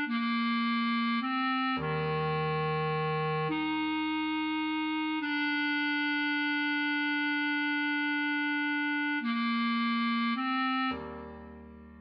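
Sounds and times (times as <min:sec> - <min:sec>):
bass clarinet melody: 0:00.0 - 0:12.0.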